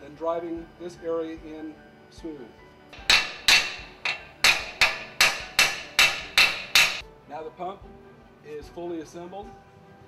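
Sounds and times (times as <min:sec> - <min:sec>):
hammer ringing blows on metal: 0:03.0 - 0:07.0.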